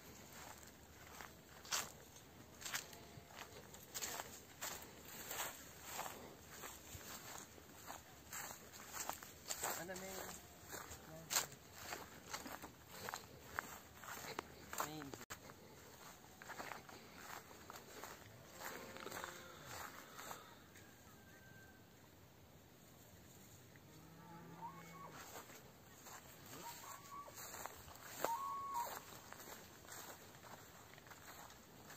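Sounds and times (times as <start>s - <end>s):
footsteps in grass: 0.0s - 20.5s, 24.6s - 31.9s
rooster crowing: 19.2s - 21.9s.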